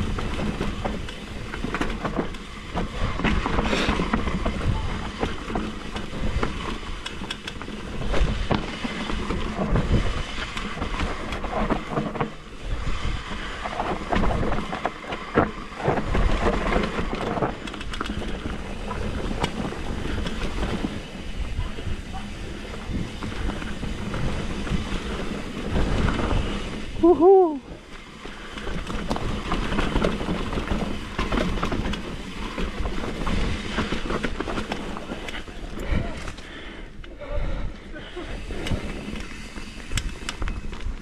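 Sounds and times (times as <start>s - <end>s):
bike knocking and rattling: 0.0s - 41.0s
bike tyres on dirt and stones: 0.0s - 41.0s.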